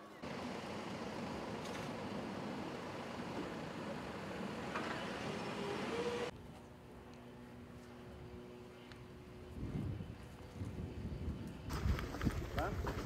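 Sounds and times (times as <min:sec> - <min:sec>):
rushing outdoor background noise: 0:00.0 - 0:13.0.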